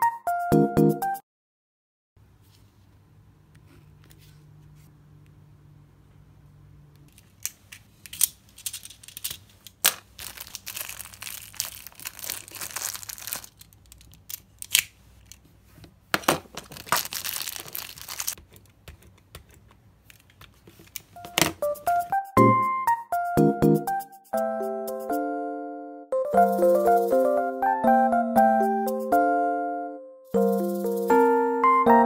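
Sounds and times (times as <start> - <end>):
plastic packaging crinkling: 8.3 - 15.3, 16.2 - 18.5.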